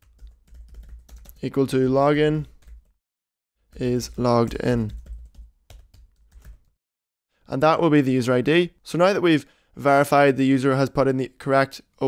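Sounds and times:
computer keyboard typing: 0:00.0 - 0:01.4, 0:02.4 - 0:02.9, 0:03.7 - 0:06.7.

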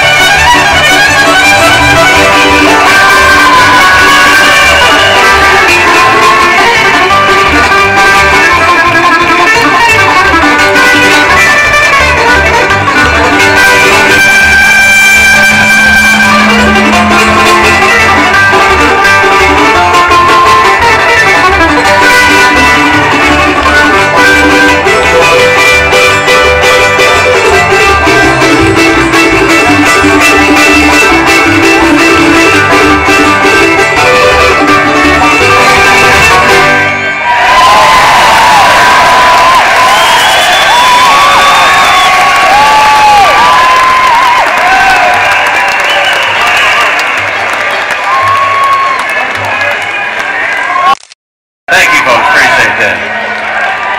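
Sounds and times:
acoustic guitar: 0:00.0 - 0:37.2
upright bass: 0:00.0 - 0:37.2
mandolin: 0:00.0 - 0:37.4
fiddle: 0:00.0 - 0:37.5
banjo: 0:00.0 - 0:48.5.

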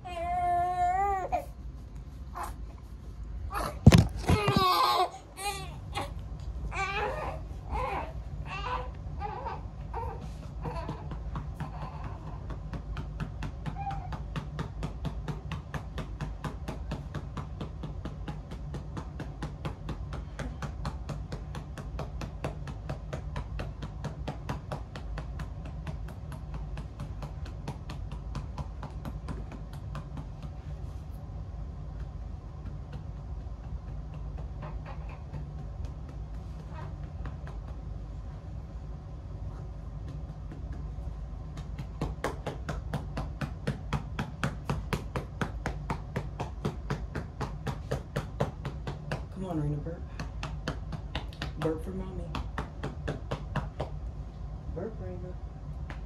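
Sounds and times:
low steady hum: 0:00.0 - 0:56.0
rapid patting on baby's back: 0:00.0 - 0:56.0.

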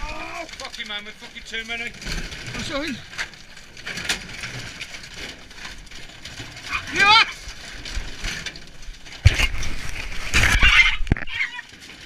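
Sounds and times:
debris crunching and clattering in skip: 0:00.0 - 0:12.0
wood cracking: 0:00.0 - 0:12.0.

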